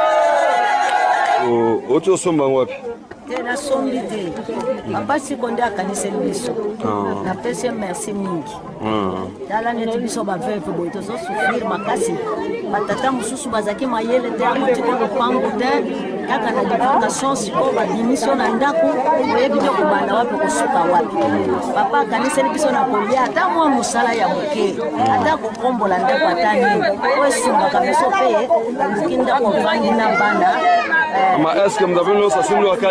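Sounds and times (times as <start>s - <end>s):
voices chattering: 1.4s - 32.9s
woman talking: 3.3s - 8.6s, 9.5s - 30.6s.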